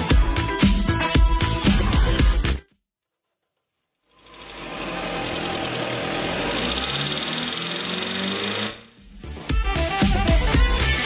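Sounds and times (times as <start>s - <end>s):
car engine idling with ticking: 4.2s - 8.7s.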